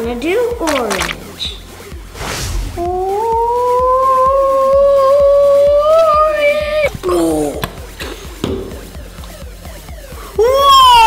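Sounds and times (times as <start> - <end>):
background music: 0.0 - 11.0
child's long rising vocalisation: 2.8 - 6.9.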